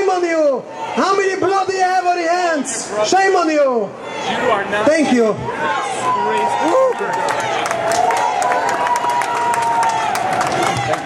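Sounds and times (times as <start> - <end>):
crowd cheering: 3.9 - 11.0
hands clapping: 6.9 - 11.0.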